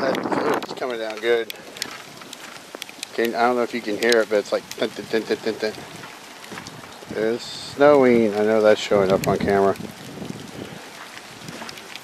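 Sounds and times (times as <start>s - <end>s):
snow pellets pattering: 0.0s - 12.0s.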